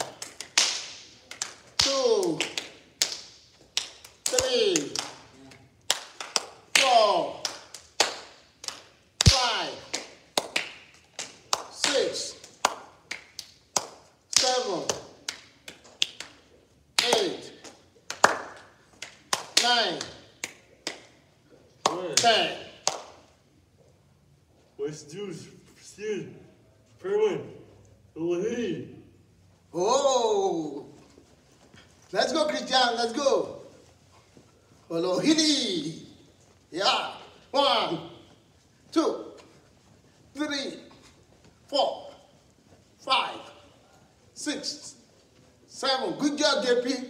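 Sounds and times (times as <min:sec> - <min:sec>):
man calling out: 0:01.8 - 0:02.6, 0:04.2 - 0:05.4, 0:06.7 - 0:07.6, 0:09.2 - 0:09.9, 0:11.8 - 0:12.4, 0:14.3 - 0:15.2, 0:17.0 - 0:17.6, 0:19.6 - 0:20.3, 0:21.9 - 0:22.8, 0:29.7 - 0:31.0, 0:32.1 - 0:33.7, 0:34.9 - 0:38.3, 0:38.9 - 0:39.4, 0:40.3 - 0:41.0, 0:41.7 - 0:42.3, 0:43.0 - 0:45.0.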